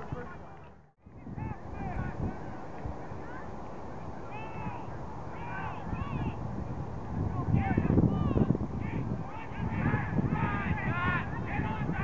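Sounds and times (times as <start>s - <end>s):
wind rumbling on microphone: 0.0s - 12.0s
people shouting calls: 4.2s - 6.4s, 7.4s - 12.0s.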